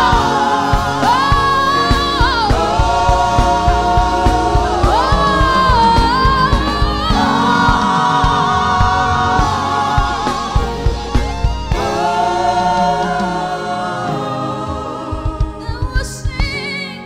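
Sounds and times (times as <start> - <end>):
drum hits: 0.0 - 13.9
band playing: 0.0 - 16.0
singers holding long notes: 0.0 - 17.0.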